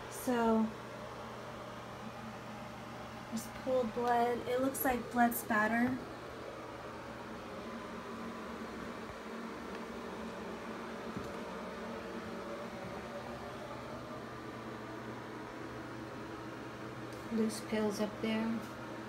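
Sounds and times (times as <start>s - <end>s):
low hum with hiss: 0.0s - 19.0s.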